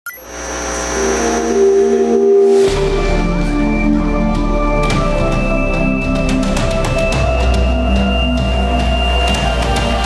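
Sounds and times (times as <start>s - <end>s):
sustained synth chord: 0.1s - 9.3s.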